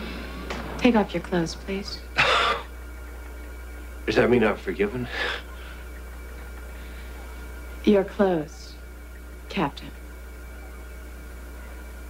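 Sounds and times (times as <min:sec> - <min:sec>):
steady low hum: 0:00.0 - 0:12.0.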